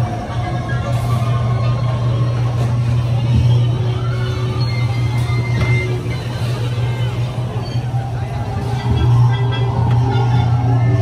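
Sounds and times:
crowd chatter: 0.0s - 11.0s
ride vehicle humming on track: 0.0s - 11.0s.

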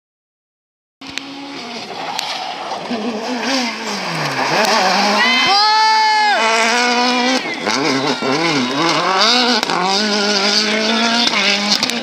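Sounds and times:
distant rally car engine: 1.0s - 12.0s
crowd chatter: 1.8s - 12.0s.

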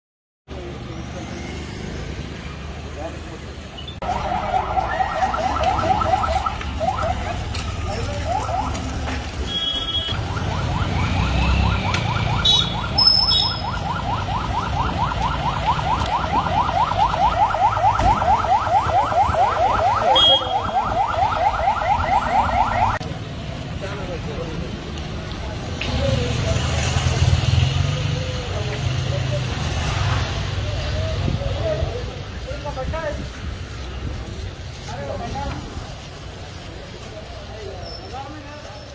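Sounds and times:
low street hum: 0.5s - 38.9s.

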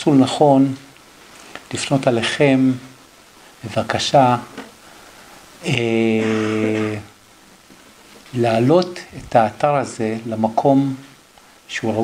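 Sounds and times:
man saying ehh: 5.6s - 7.2s.

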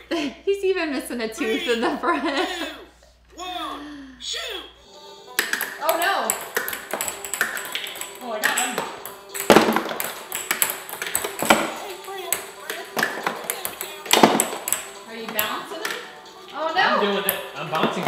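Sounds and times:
voices: 0.0s - 4.8s, 5.7s - 6.4s, 8.2s - 9.1s, 11.7s - 18.0s
ping-pong balls bouncing: 5.3s - 16.2s, 17.2s - 18.0s.

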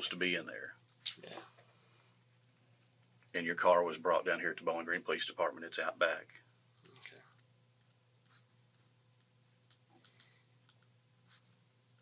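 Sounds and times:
faint clicks: 9.1s - 10.9s.

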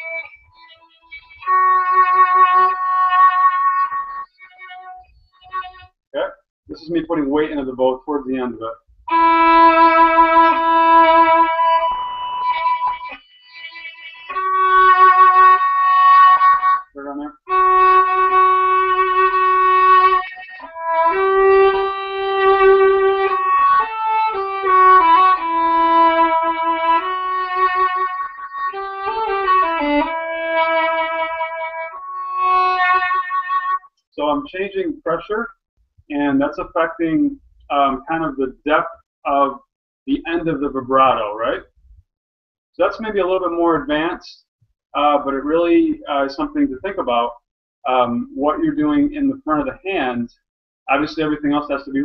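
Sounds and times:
violin long bowed notes: 0.0s - 5.9s, 8.3s - 34.8s.

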